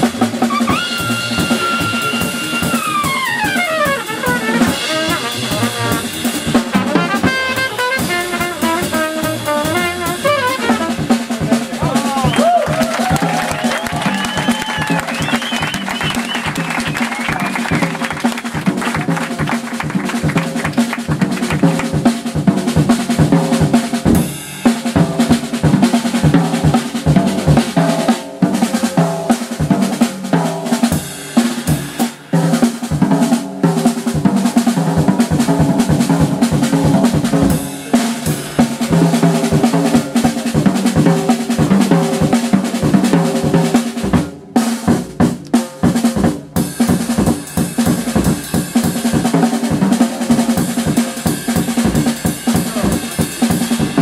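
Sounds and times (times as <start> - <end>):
jazz drum kit: 0.0 - 54.0
acoustic double bass: 1.0 - 12.0.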